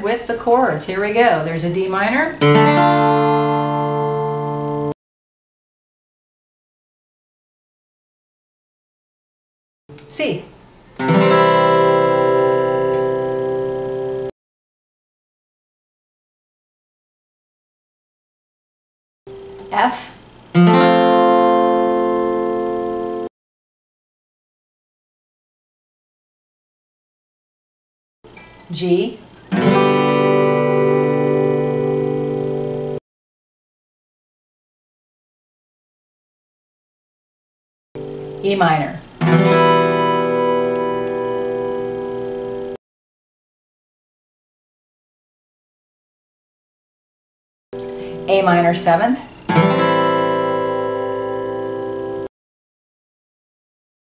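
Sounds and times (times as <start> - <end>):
acoustic guitar chord strum: 2.4 - 4.9, 11.0 - 14.3, 19.3 - 19.9, 20.5 - 23.3, 29.5 - 33.0, 38.0 - 42.8, 47.8 - 52.3.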